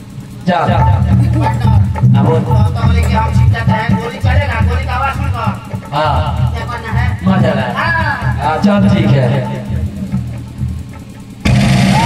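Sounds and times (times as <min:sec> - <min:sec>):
bass line: 0:00.0 - 0:12.0
live band playing loudly: 0:00.0 - 0:12.0.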